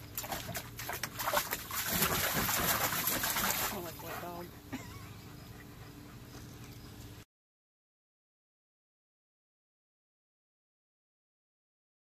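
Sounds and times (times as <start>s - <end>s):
dog splashing water in pool: 0.0s - 4.5s.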